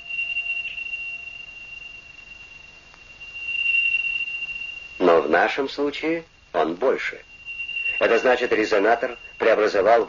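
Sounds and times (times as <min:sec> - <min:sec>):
lower electronic tone: 0:00.0 - 0:05.9, 0:07.2 - 0:10.0
high-pitched electronic tone: 0:07.3 - 0:10.0.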